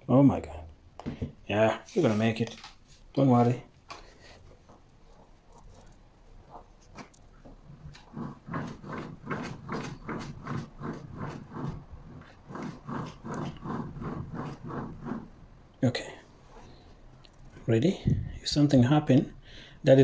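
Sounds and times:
man breathing hard: 19.4s - 19.8s.

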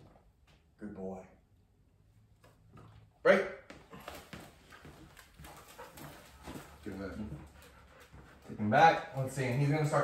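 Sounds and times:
dog's paws on tiled floor: 2.2s - 10.0s
footsteps on tiled floor: 2.4s - 10.0s.

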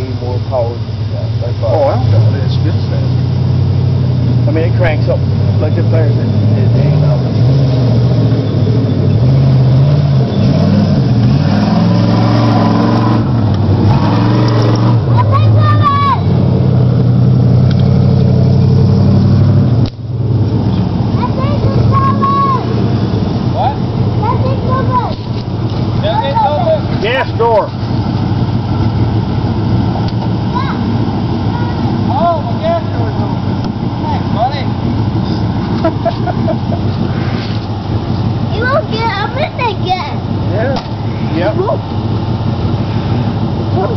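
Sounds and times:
truck engine revving: 0.0s - 43.9s.

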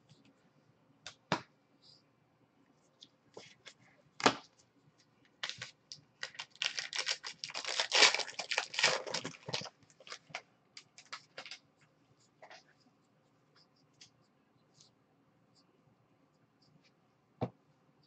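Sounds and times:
foil wrapper tearing and crinkling: 6.2s - 10.3s.

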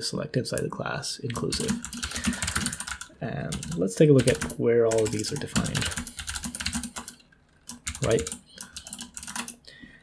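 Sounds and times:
keyboard keys clicking: 1.3s - 9.6s.

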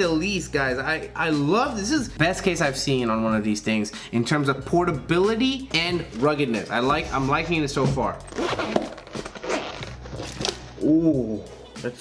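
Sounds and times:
zipper rasping: 8.2s - 10.8s
case handling noise: 8.3s - 10.6s.

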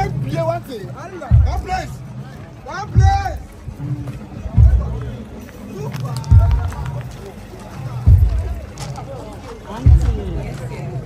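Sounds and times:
faint background chatter: 0.0s - 11.0s
handheld camera thuds: 6.3s - 6.8s, 8.1s - 8.6s.

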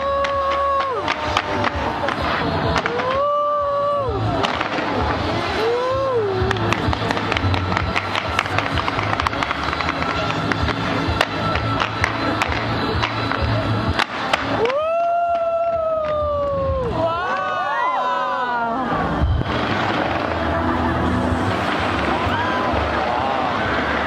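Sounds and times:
crowd whooping: 0.0s - 10.6s, 14.0s - 24.0s
fireworks crackling and popping: 0.0s - 17.8s, 18.9s - 24.0s.

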